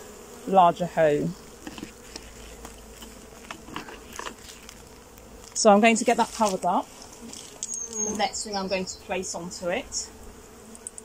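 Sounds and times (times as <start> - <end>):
bees buzzing: 0.0 - 11.0
short clicks: 10.7 - 11.0.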